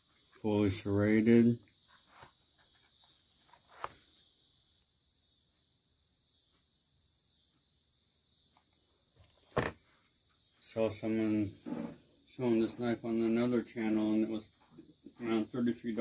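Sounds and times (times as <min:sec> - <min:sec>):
faint high hiss: 0:00.0 - 0:16.0.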